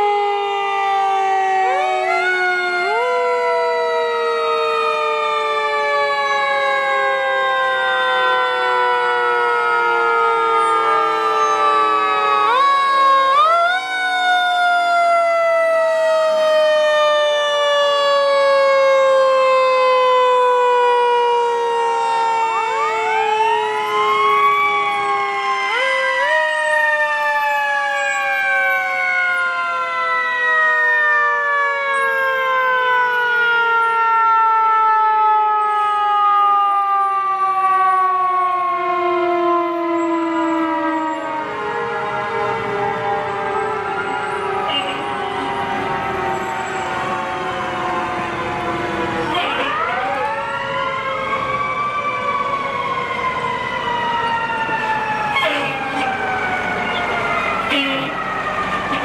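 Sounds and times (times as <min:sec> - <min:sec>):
fire truck sirens wailing: 0:00.0 - 0:59.0.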